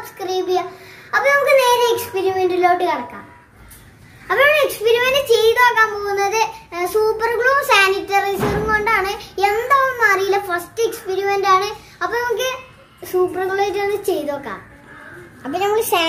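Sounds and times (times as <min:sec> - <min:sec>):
young boy talking: 0:00.0 - 0:03.3, 0:04.3 - 0:14.8, 0:15.4 - 0:16.0.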